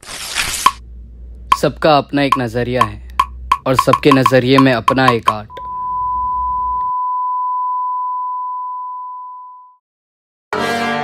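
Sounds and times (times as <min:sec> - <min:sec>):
steady electronic beep: 0:03.2 - 0:09.2.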